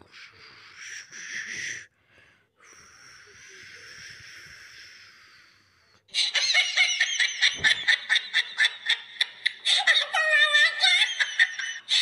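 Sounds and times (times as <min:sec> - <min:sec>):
high-pitched giggling laughter: 0:06.1 - 0:12.0.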